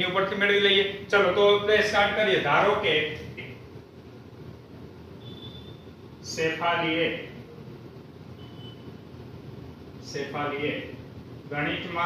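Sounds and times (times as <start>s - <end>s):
low room hum: 0.0s - 12.0s
faint high beep: 5.2s - 5.9s, 8.4s - 8.9s.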